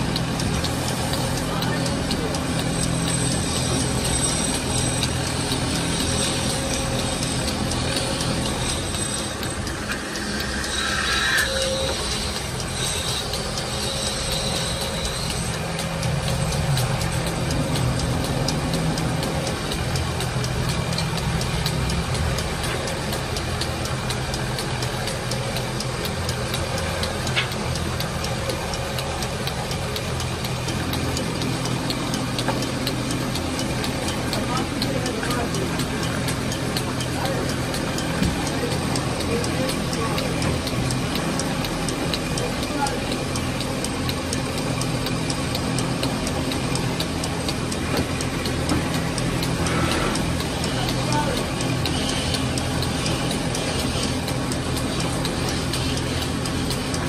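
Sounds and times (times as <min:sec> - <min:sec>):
wood lathe humming: 0:00.0 - 0:32.6.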